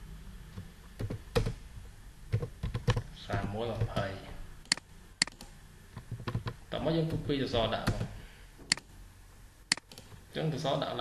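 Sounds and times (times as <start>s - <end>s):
keyboard keystrokes: 2.3s - 5.5s.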